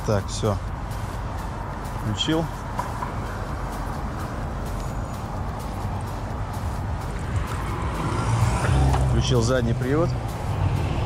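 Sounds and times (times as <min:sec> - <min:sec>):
car engine approaching: 0:00.0 - 0:11.0
street traffic rumble: 0:00.0 - 0:11.0.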